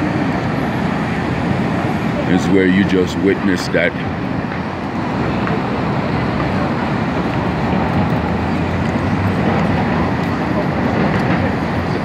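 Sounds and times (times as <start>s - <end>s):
city traffic roar: 0.0s - 12.0s
construction machinery: 0.0s - 12.0s.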